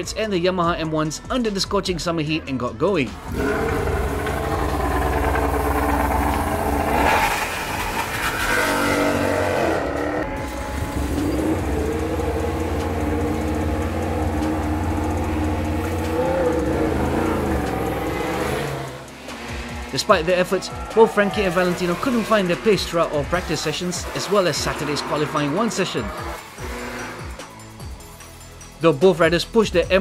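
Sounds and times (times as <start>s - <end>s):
motorcycle engine revving: 3.1s - 28.1s.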